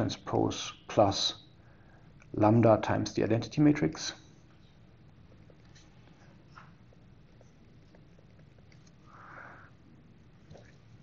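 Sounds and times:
faint room hum: 0.0 - 11.0
person sniffing: 9.0 - 9.8.

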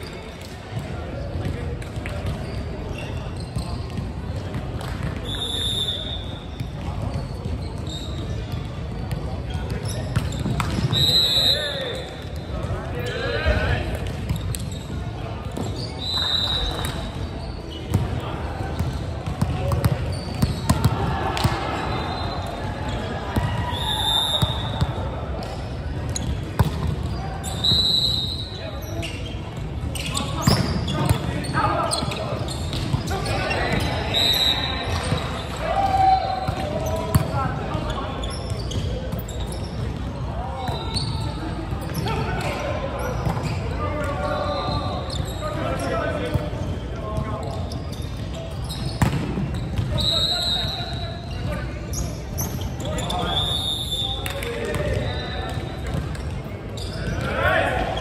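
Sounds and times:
shoes squeaking on court: 0.0 - 35.6, 36.4 - 58.0.

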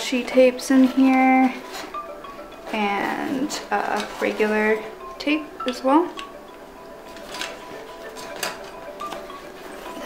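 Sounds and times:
plastic rustling: 0.0 - 10.0
soft background music: 0.0 - 10.0.

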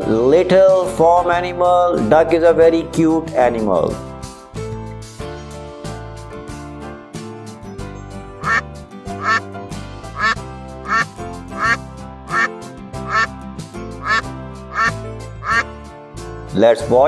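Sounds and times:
background music: 0.0 - 17.0
duck quacking: 8.4 - 8.6, 9.2 - 9.4, 10.2 - 13.3, 14.0 - 15.7.

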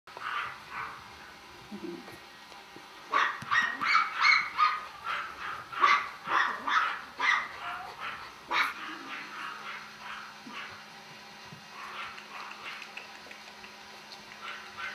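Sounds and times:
puppy yipping and whimpering: 3.2 - 9.8.

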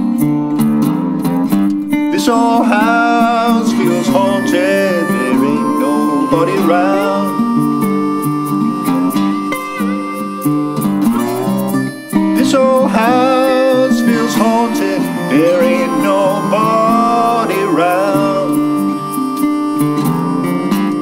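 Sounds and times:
acoustic slide guitar melody: 0.0 - 21.0
picked guitar accompaniment: 0.0 - 21.0.

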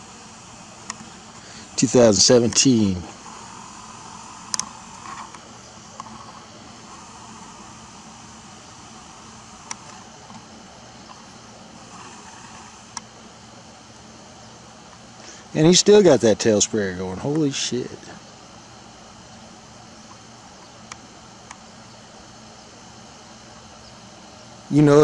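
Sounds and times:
sharp clicks: 0.8 - 1.1, 4.4 - 6.4.

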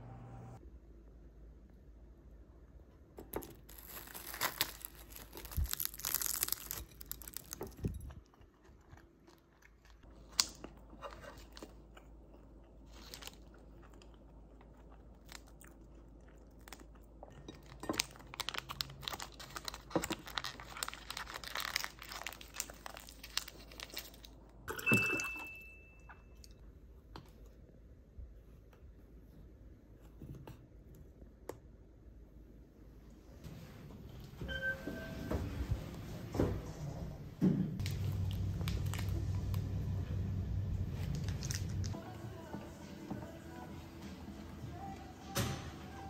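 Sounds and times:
bread roll tearing: 3.3 - 8.1, 18.0 - 24.4
foil crinkling: 3.5 - 8.1, 17.8 - 24.4, 37.8 - 39.7, 41.0 - 42.0
chewing: 3.8 - 24.3
water dispenser beeping: 24.7 - 25.9, 34.4 - 35.6.

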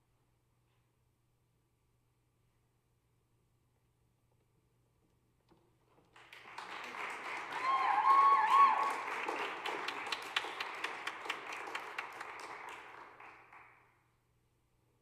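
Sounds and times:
audience applauding: 6.1 - 13.9
person cheering: 7.4 - 9.2.

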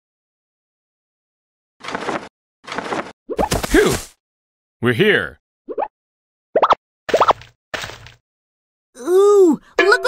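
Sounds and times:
cartoon bloop pops: 6.6 - 7.4.

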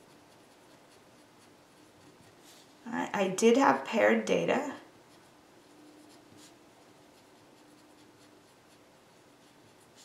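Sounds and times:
handwriting scratching on paper: 0.0 - 2.8, 5.1 - 10.0
faint steady hum: 0.0 - 10.0.

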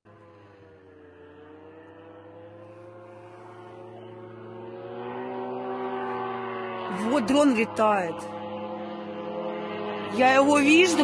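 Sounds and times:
drone engine droning hum: 0.0 - 11.0.

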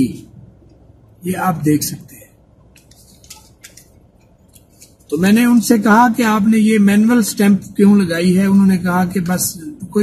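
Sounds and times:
low steady hum: 0.0 - 10.0
paper slip rustling and clicking: 2.8 - 5.2.

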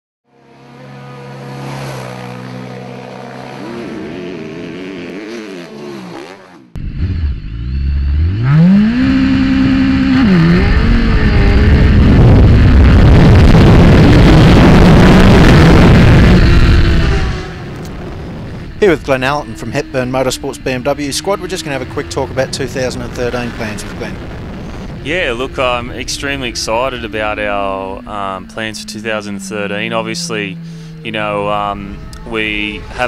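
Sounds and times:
motorcycle engine revving: 0.3 - 33.0.

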